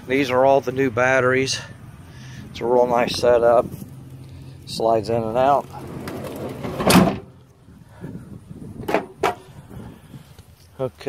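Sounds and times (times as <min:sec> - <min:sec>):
metal tray banging shut: 0:06.0 - 0:07.3, 0:08.9 - 0:09.4.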